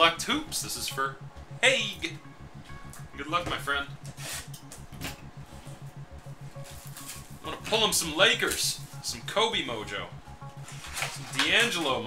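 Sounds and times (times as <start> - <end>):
fast low music beat: 0.0 - 12.0.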